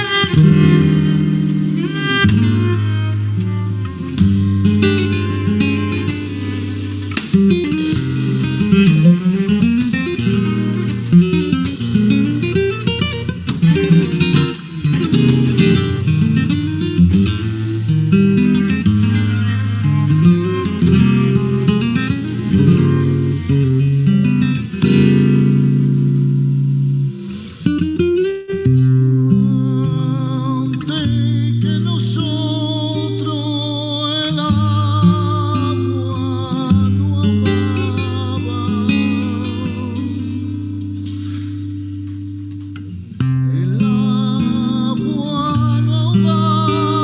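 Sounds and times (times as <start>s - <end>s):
cello holding low notes: 0.0s - 7.0s, 15.4s - 24.3s
plucked acoustic guitar: 0.0s - 47.0s.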